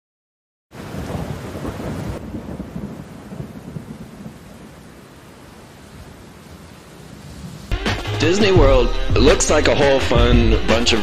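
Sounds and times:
thunder rolling: 0.7 - 5.0
rain-like hiss: 0.8 - 7.8.

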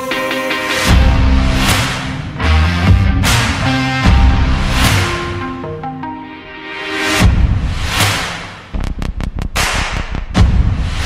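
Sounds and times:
sharp percussion hits: 0.0 - 5.6, 6.7 - 11.0.

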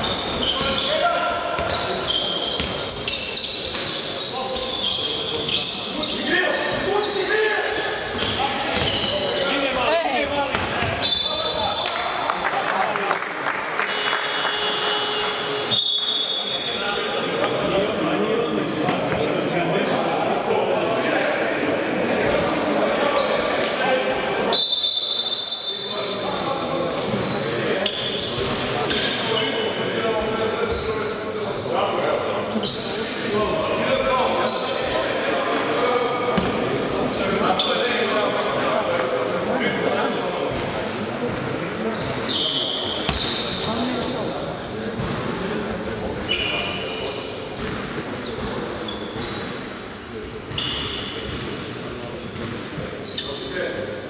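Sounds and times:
sneaker squeaks: 0.0 - 12.2, 13.9 - 17.7, 24.4 - 31.7, 32.5 - 35.6, 36.4 - 38.1, 41.3 - 54.0
echoing voices: 0.0 - 54.0
basketball bouncing: 43.1 - 43.3.

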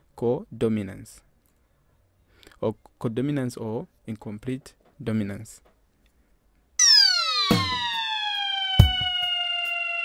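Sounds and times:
synthesized tone gliding down: 6.8 - 10.0
drum hits: 7.4 - 8.1, 8.7 - 9.3.

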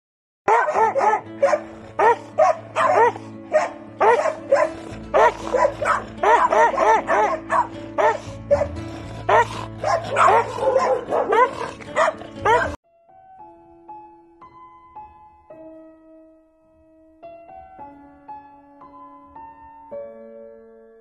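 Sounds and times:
dog barking: 0.5 - 12.8
background music: 0.5 - 21.0.

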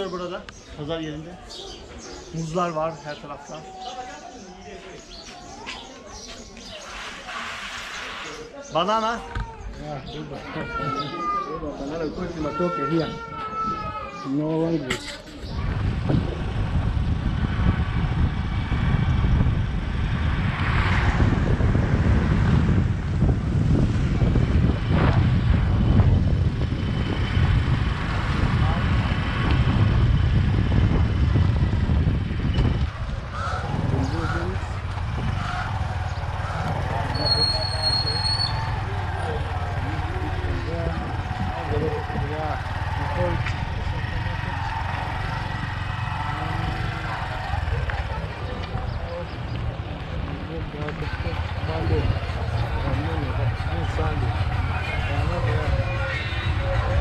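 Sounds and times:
people's voices: 0.0 - 18.4, 19.1 - 57.0
wind rumble on microphone: 15.2 - 57.0
motorcycle engine running: 21.2 - 57.0.

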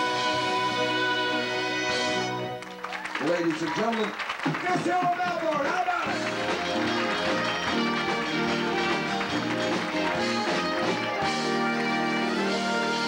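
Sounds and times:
band playing sustained chords: 6.1 - 13.0
bass line: 6.1 - 13.0.

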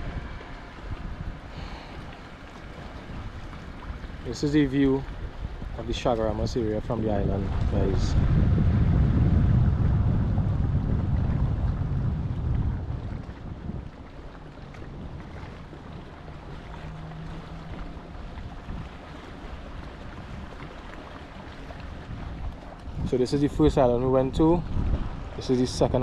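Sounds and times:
sea noise: 0.0 - 26.0
wind buffeting microphone: 0.0 - 26.0.

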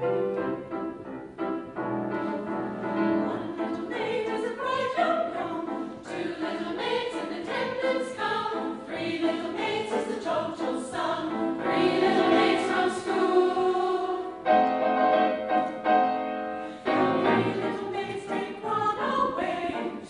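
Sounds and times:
mixed choir singing: 2.3 - 20.0.

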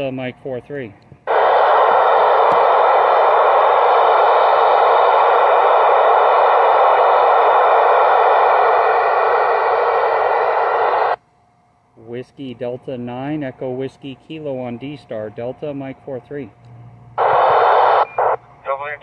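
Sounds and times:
loud radio static: 1.3 - 11.2, 17.2 - 19.0.

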